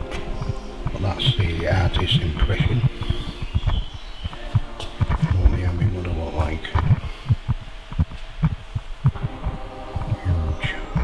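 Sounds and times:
faint steady hum: 0:00.0 - 0:11.0
low microphone thumps: 0:00.0 - 0:11.0.

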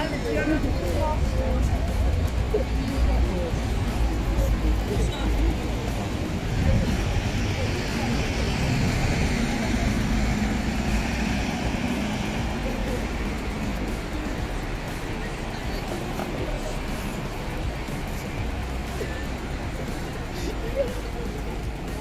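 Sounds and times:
traffic noise: 0:00.0 - 0:22.0
vehicle passing: 0:00.0 - 0:22.0
voices of passers-by: 0:00.0 - 0:22.0.

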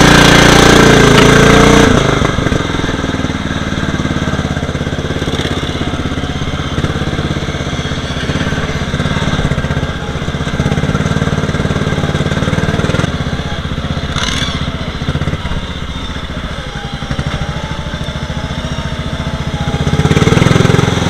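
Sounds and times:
riding mower engine: 0:00.0 - 0:21.0.

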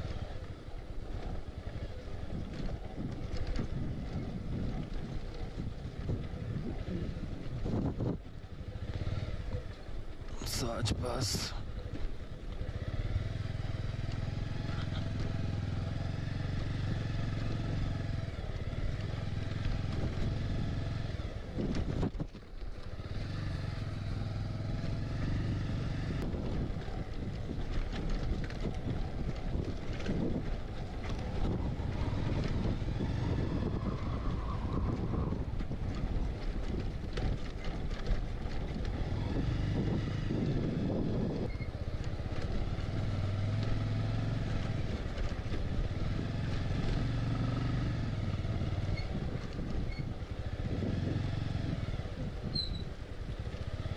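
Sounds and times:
motorcycle engine running: 0:00.0 - 0:53.9.

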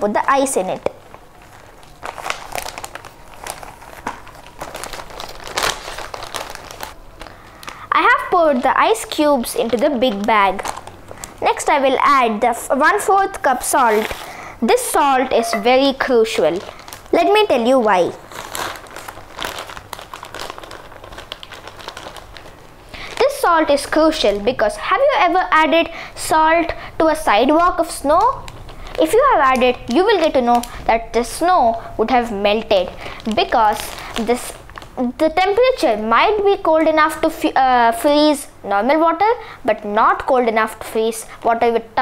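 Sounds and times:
plastic bag crinkling: 0:00.0 - 0:36.2.

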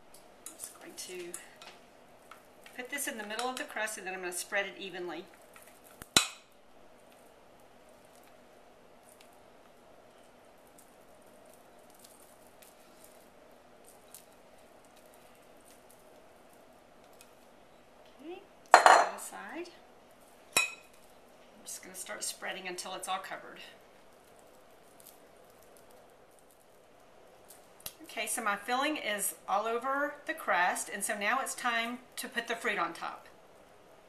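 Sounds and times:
utensil clinking on glass bowl: 0:18.8 - 0:19.2.

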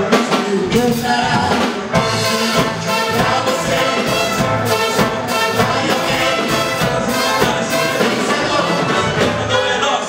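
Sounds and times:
trombones: 0:01.3 - 0:10.0
trumpets: 0:02.0 - 0:10.0.

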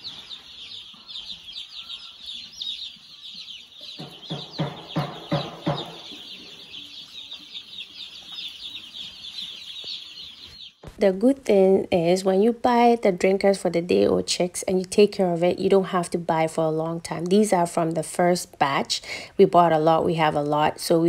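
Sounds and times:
chicks peeping: 0:00.0 - 0:21.0.

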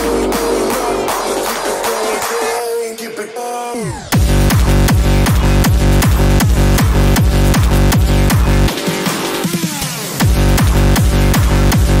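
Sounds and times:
heavy techno kick drum: 0:00.0 - 0:02.6, 0:03.8 - 0:12.0.

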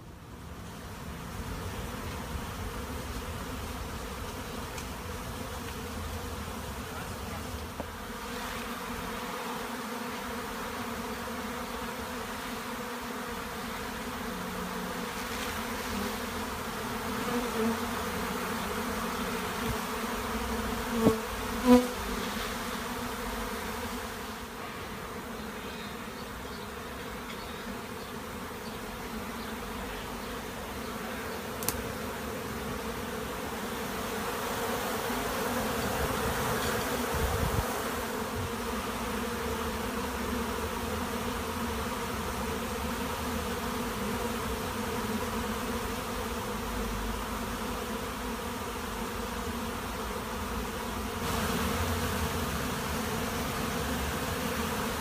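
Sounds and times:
bee swarm humming: 0:00.0 - 0:55.0
loud bee buzzes: 0:00.0 - 0:55.0.

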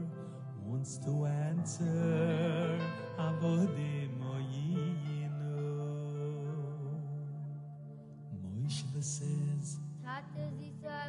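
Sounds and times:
low voice singing sad song: 0:00.0 - 0:11.0.

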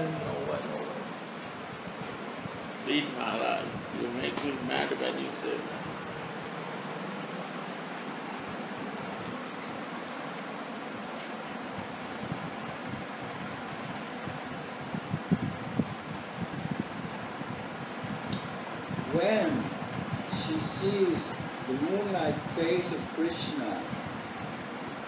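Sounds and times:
fan-like hiss: 0:00.0 - 0:25.0.

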